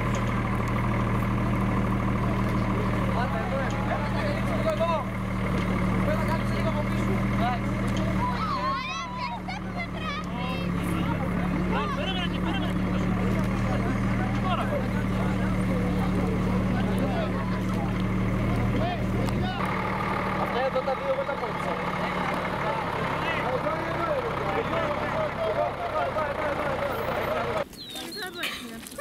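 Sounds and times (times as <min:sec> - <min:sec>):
diesel truck engine idling: 0:00.0 - 0:27.7
many people talking: 0:00.0 - 0:29.0.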